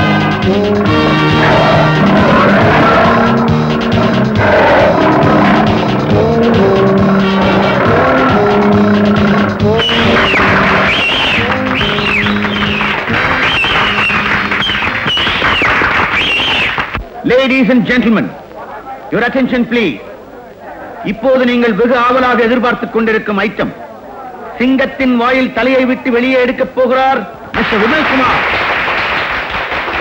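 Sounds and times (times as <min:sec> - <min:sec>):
film background music: 0:00.0 - 0:14.9.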